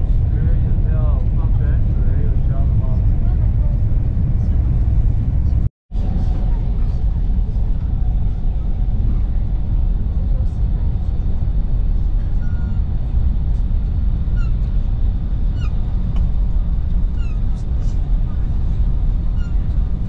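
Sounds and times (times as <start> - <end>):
train cabin low rumble: 0.0 - 20.0.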